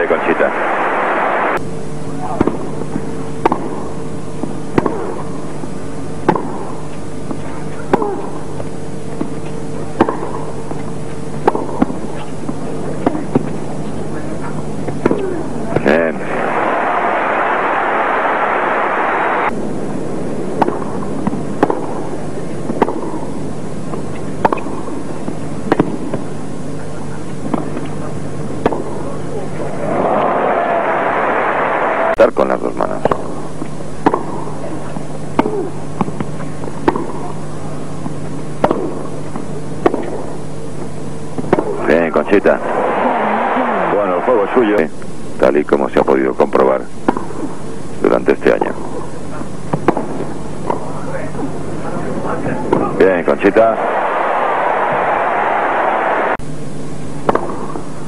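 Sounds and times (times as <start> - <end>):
steady hum: 0.0 - 58.0
tennis ball struck by rackets: 3.4 - 3.8, 4.4 - 5.2, 6.2 - 6.7, 10.0 - 10.4, 11.4 - 13.5, 20.6 - 21.9, 22.7 - 23.3, 24.4 - 25.0, 25.7 - 26.2, 28.6 - 29.0, 34.0 - 34.4, 35.4 - 37.2, 38.6 - 39.1, 39.8 - 40.2, 49.7 - 50.8, 57.2 - 57.8
crowd applause: 16.2 - 19.5, 29.6 - 32.2, 42.6 - 44.6.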